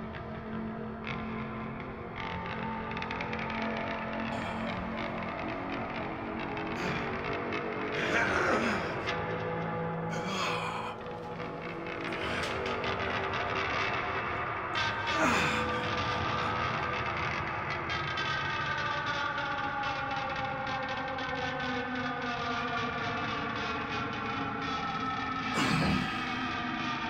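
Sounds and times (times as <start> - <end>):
eerie droning score: 0.0 - 27.0.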